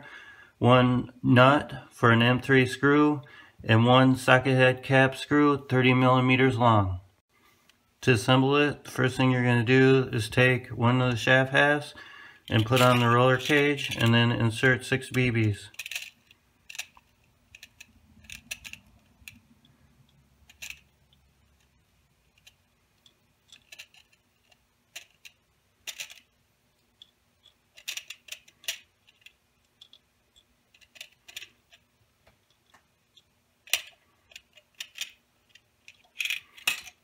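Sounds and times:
steel balls clicking on plastic: 15.1s - 19.4s, 20.0s - 31.8s, 32.4s - 37.0s.

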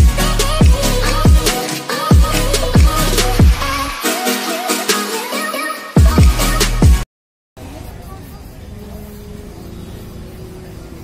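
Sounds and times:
low rumble of road traffic: 7.6s - 11.0s.

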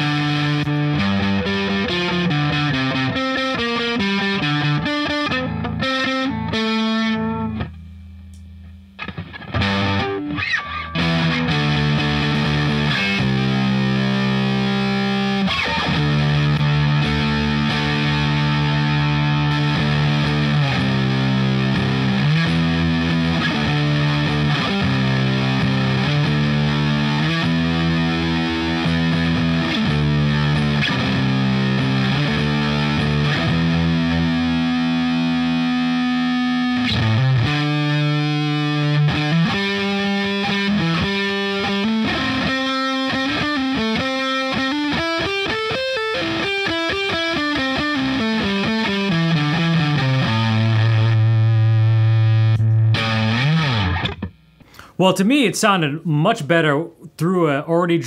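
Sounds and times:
distorted guitar chords: 0.0s - 58.0s
electric guitar riff: 0.0s - 58.0s.

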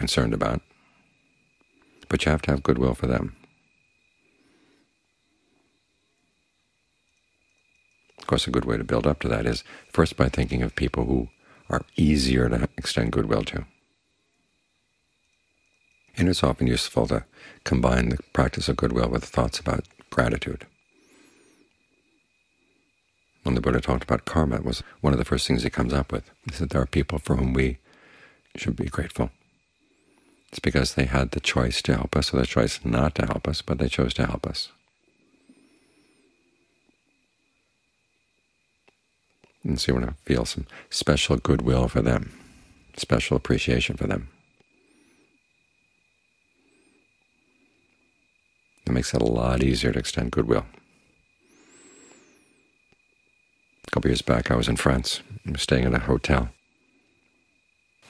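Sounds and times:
soft low hoots: 0.0s - 57.5s
thin steady high whine: 0.0s - 58.0s.

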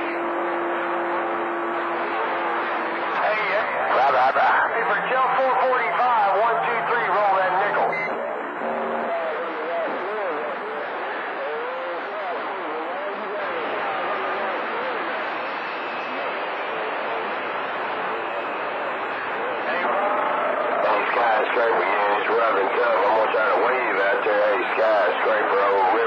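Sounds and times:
garbled radio talk: 2.0s - 15.4s, 19.4s - 26.0s
radio voice: 3.1s - 15.3s, 19.4s - 26.0s.

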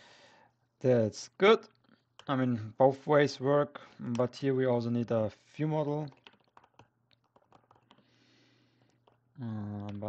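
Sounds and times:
typing on computer keyboard: 6.1s - 8.1s, 8.8s - 9.2s.

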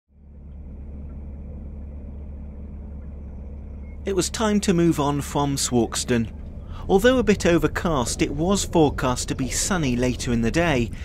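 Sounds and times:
boat engine rumbling: 0.1s - 11.0s.

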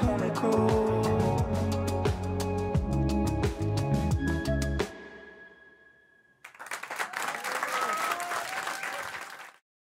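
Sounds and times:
studio audience applauding: 6.4s - 9.6s
audience whooping: 6.5s - 9.5s.

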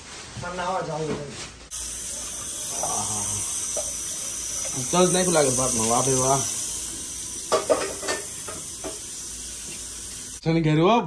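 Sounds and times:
steady high hiss: 1.7s - 10.6s.

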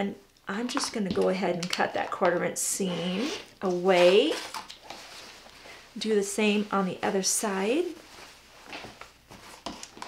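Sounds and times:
fabric rustling: 3.9s - 10.0s.

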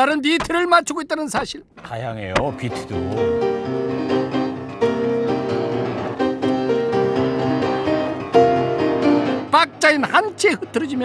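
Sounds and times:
hands knocking on piano: 2.3s - 2.9s
lively upright piano: 2.4s - 11.0s.

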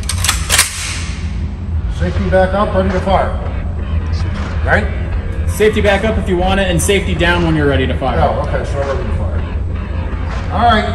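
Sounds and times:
rifle bolt metallic clicks: 0.0s - 1.1s
rifle bolt slamming forward: 0.0s - 1.1s.

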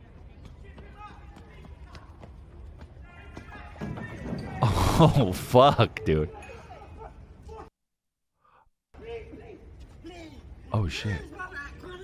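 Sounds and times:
low city background: 0.0s - 12.0s.

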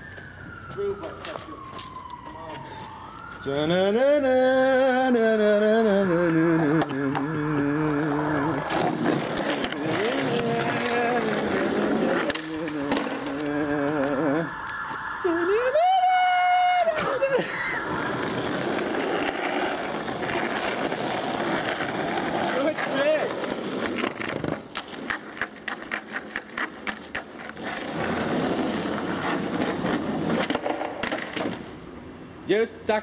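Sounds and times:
skateboard wheels rolling on concrete: 0.0s - 33.0s
wordless singing voice: 3.4s - 8.6s
skateboard clacks: 18.1s - 31.7s.

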